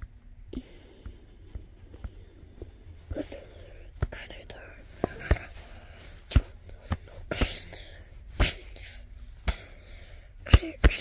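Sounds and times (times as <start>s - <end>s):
person whispering: 3.1s - 5.9s, 6.6s - 9.1s.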